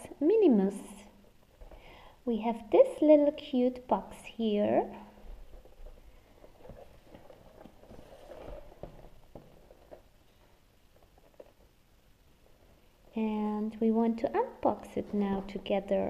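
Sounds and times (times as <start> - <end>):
cardboard box rustling: 5.5 - 10.1.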